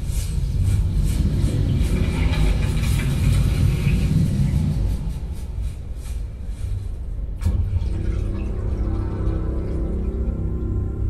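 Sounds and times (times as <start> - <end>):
deep bass hit: 7.4 - 11.0
sustained synth chord: 7.4 - 11.0.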